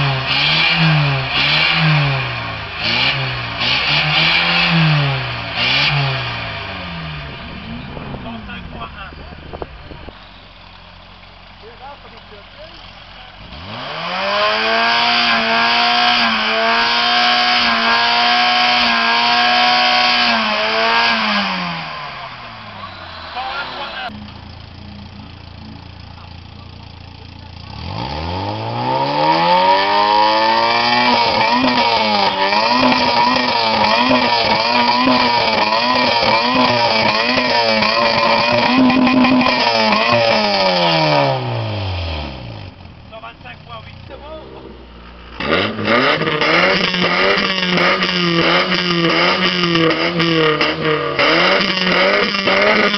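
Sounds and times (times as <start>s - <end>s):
car engine revving: 0.0s - 52.9s.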